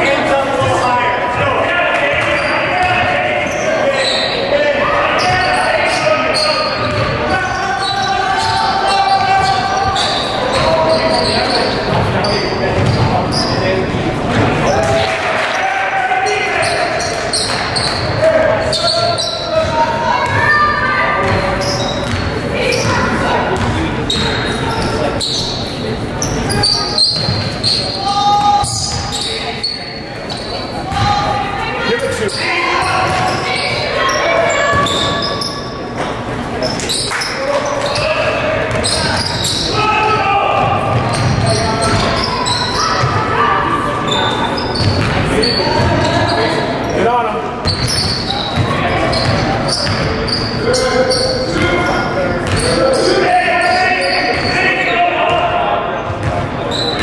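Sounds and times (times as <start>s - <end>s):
people talking and calling: 0.0s - 57.0s
basketball bouncing on hardwood floor: 44.8s - 45.2s.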